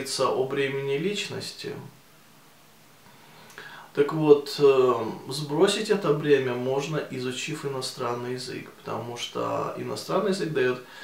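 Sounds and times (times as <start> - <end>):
man talking: 0.0 - 2.0, 3.9 - 11.0
soft breath: 3.0 - 4.0.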